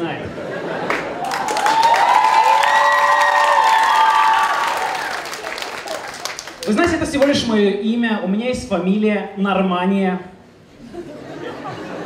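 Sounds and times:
audience cheering: 0.8 - 6.8
audience applauding: 0.8 - 7.4.

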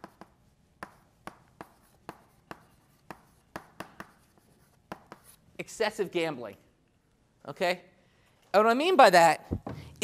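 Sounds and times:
chalk tapping and scratching: 0.0 - 5.5.

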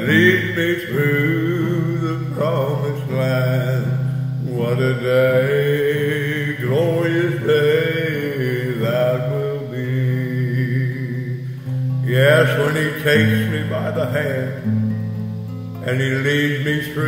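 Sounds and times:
man singing a gospel hymn: 0.0 - 14.8, 15.8 - 17.0.

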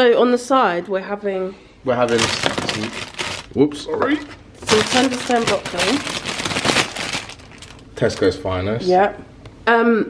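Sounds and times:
plastic bag crinkling: 2.1 - 3.6, 4.6 - 8.4.

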